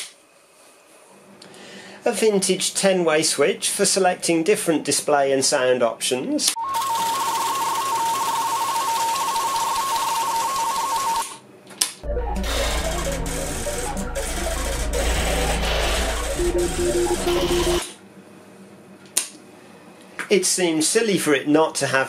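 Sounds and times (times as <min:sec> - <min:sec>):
rapid high beeps: 0:12.0 - 0:17.8
low electronic hum: 0:12.0 - 0:17.9
steady beep: 0:12.0 - 0:17.9
fast chattering blips: 0:12.1 - 0:17.8.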